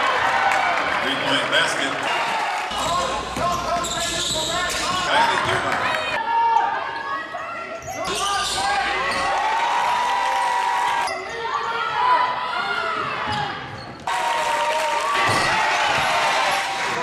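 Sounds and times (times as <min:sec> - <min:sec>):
players and spectators voices: 0:00.0 - 0:17.0.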